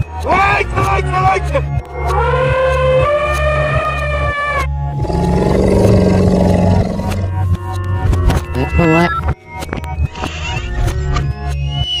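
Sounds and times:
background music with steady beat: 0.0s - 12.0s
animal roaring: 4.9s - 7.4s.

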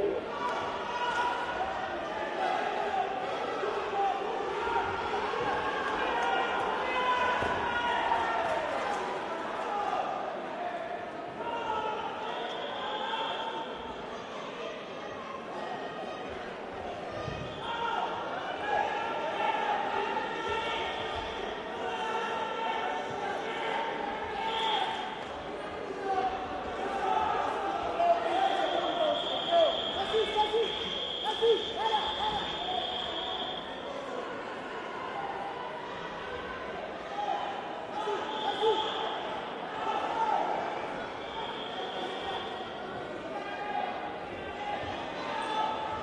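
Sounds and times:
indistinct voices in echoing hall: 0.0s - 46.0s.

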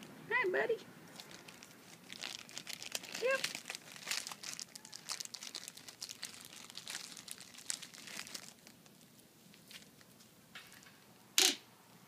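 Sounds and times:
crinkling crackling rustle: 1.1s - 11.0s.

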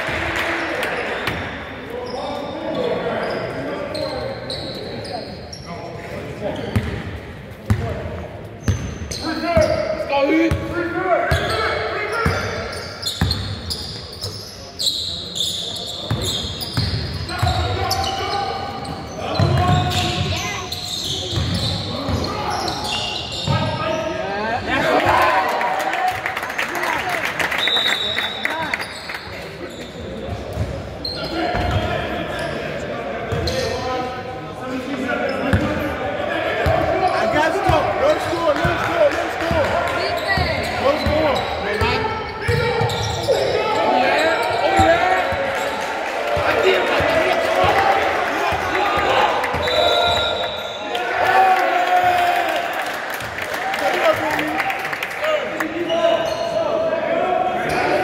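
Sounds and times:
players shouting: 36.2s - 53.0s.

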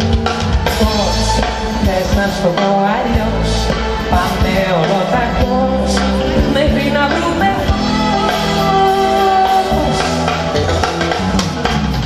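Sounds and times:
drum kit strokes: 0.0s - 12.0s
electric bass guitar: 0.0s - 12.0s
live band playing pop song: 0.0s - 12.0s.

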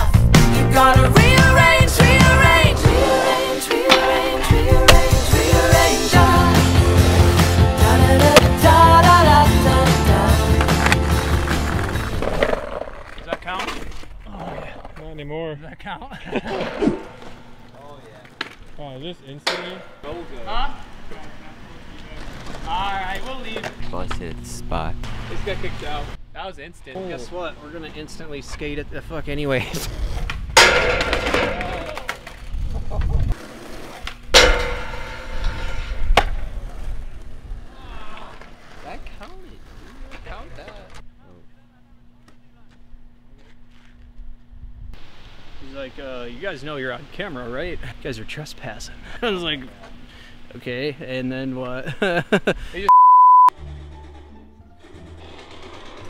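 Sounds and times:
rock song with singing: 0.0s - 11.6s
skateboard wheels rolling on concrete: 0.0s - 15.2s, 16.4s - 24.4s, 27.2s - 41.1s, 53.8s - 56.0s
skateboard impact ringing: 3.7s - 5.2s, 19.4s - 20.2s, 30.6s - 32.2s, 34.3s - 36.7s.

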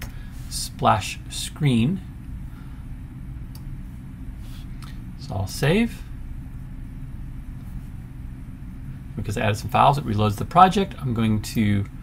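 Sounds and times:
low hum: 0.0s - 12.0s.

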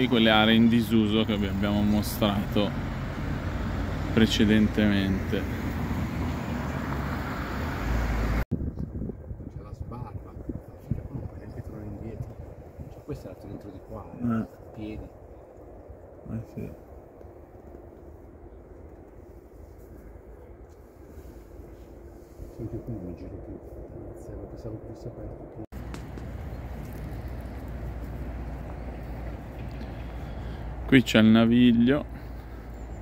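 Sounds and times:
cars driving past: 0.0s - 8.4s, 25.8s - 33.0s
distant motorway traffic rumble: 0.0s - 33.0s.

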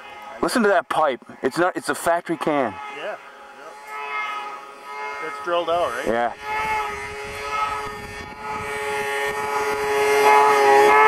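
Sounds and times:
snowmobile engine droning: 0.0s - 11.0s.

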